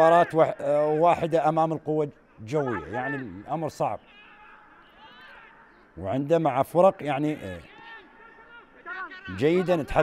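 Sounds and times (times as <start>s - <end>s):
faint stadium ambience: 0.0s - 10.0s.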